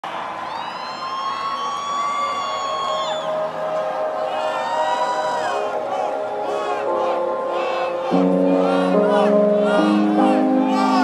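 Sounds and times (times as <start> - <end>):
crowd noise: 0.0 - 11.0
synth tones sliding in pitch: 2.2 - 11.0.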